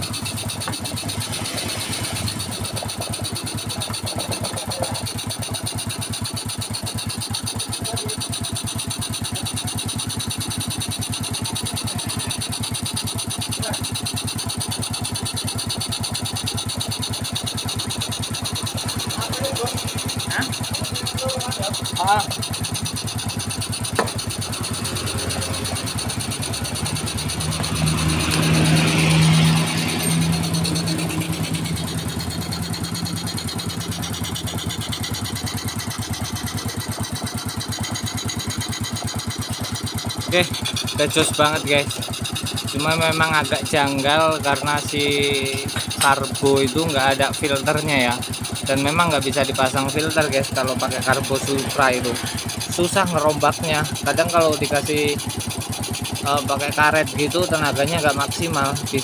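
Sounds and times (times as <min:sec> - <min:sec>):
scooter engine idling: 0:00.0 - 0:59.0.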